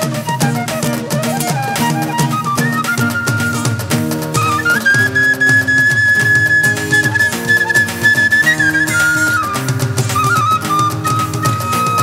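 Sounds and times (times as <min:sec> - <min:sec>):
bamboo flute melody: 0:00.0 - 0:12.0
instrumental accompaniment: 0:00.0 - 0:12.0.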